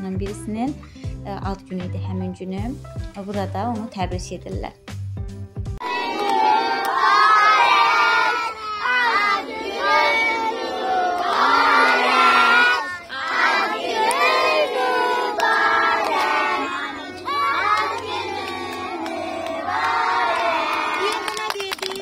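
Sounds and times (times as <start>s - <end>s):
children singing together: 5.8s - 21.8s.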